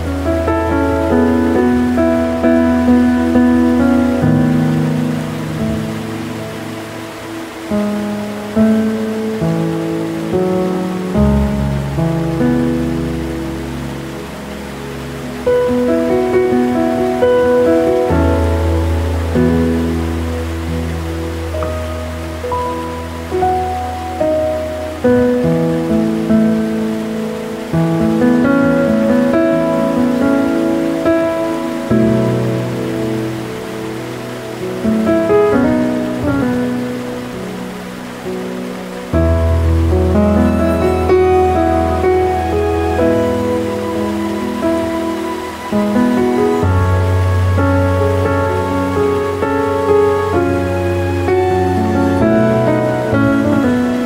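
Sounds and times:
gentle piano music: 0.0s - 54.0s
waterfall rushing hiss: 0.0s - 54.0s.

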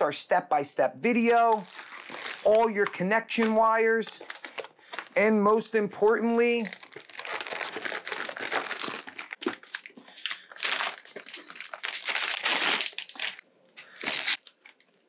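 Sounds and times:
plastic bag crinkling: 1.4s - 5.2s, 6.2s - 15.0s.

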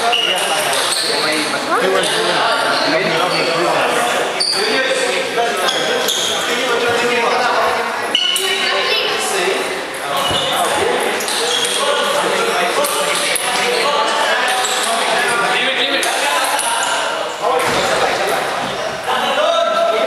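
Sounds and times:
chatter echoing in a hall: 0.0s - 20.0s.

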